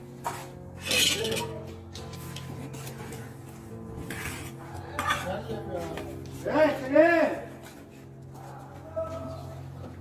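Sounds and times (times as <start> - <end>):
background music: 0.0 - 10.0
tiles scraping and clinking: 0.8 - 3.2, 4.0 - 5.5.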